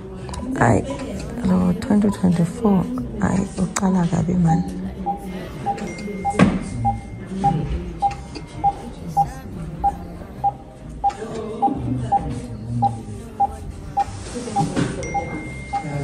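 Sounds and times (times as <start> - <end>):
medical equipment beeping: 1.5 - 2.6, 4.4 - 16.0.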